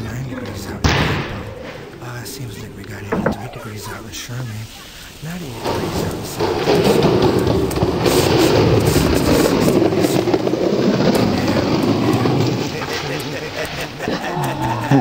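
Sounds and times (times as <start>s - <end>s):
person speaking: 0.0s - 7.6s, 9.0s - 15.0s
skateboard wheels rolling on pavement: 0.0s - 15.0s.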